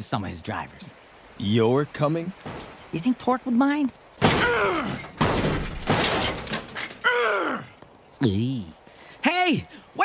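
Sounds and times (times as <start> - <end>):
car crashing impacts: 4.2 - 7.1.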